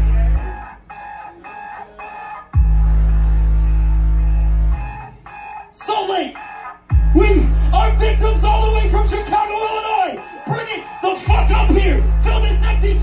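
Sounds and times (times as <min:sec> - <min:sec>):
deep loud bass notes: 0:00.0 - 0:00.7, 0:02.6 - 0:05.0, 0:06.9 - 0:09.3, 0:11.3 - 0:13.0.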